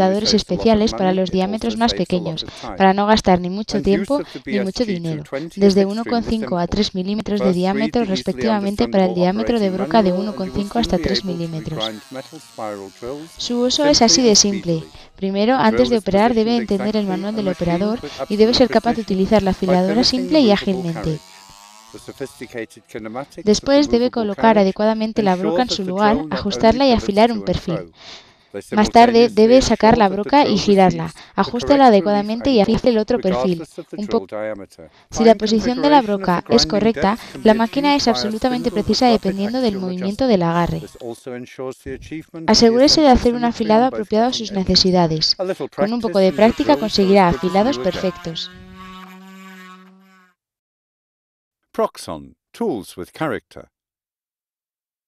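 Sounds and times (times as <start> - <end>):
electric motor buzzing: 0.0 - 28.2, 28.8 - 34.2, 35.1 - 41.1, 42.5 - 50.4
drill bit on grinding wheel: 3.8 - 28.0, 35.0 - 41.1, 45.8 - 50.3.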